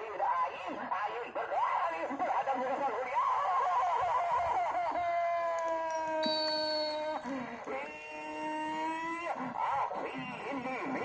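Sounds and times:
people laughing and shouting: 0.0 - 11.0.

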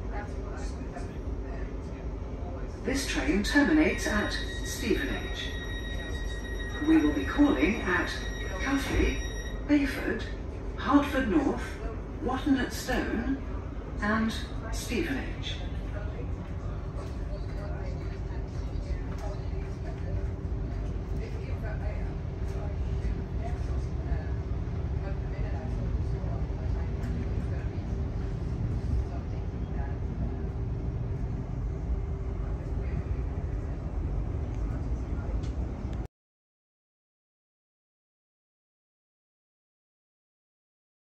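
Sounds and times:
constant electric hum: 0.0 - 36.1.

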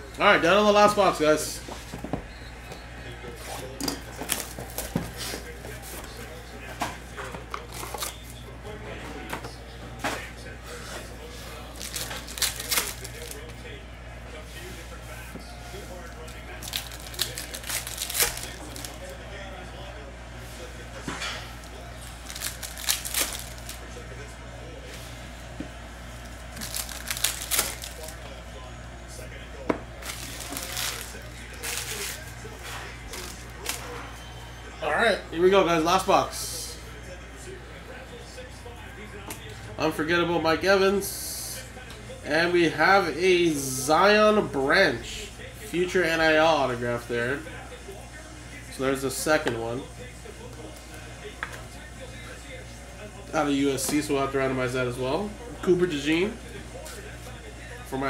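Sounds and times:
foil packs crinkling and tearing: 7.6 - 8.2, 11.6 - 13.5, 16.2 - 19.2, 22.0 - 23.9, 26.4 - 28.2, 30.0 - 34.0.

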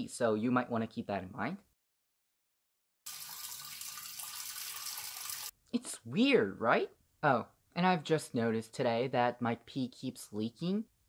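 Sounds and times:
urine splashing into toilet water: 3.1 - 5.5.

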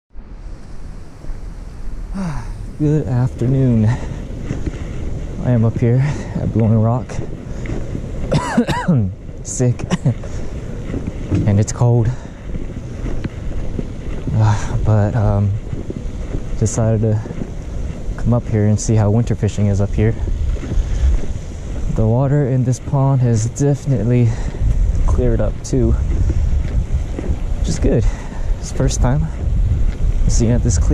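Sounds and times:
wind buffeting microphone: 0.1 - 30.9.

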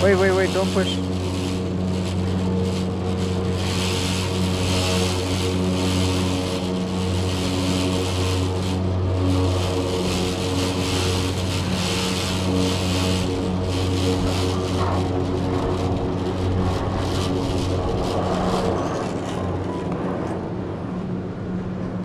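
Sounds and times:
whirring hiss: 0.0 - 19.6
machinery humming: 0.0 - 22.0.

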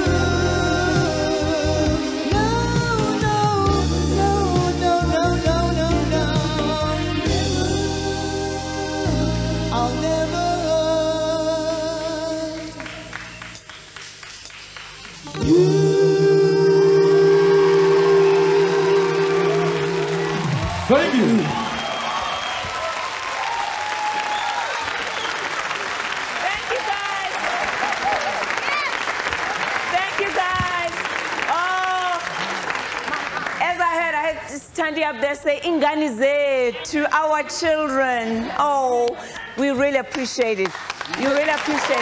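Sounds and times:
male vocal group singing: 0.0 - 12.9, 15.3 - 21.3
audience applauding and cheering: 12.5 - 33.8, 39.1 - 42.0.

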